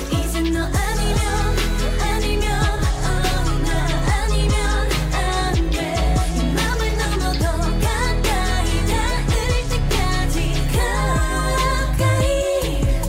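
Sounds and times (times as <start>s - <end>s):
electronic beat: 0.0s - 13.0s
woman singing: 0.0s - 13.0s
deep falling bass notes: 0.5s - 13.0s.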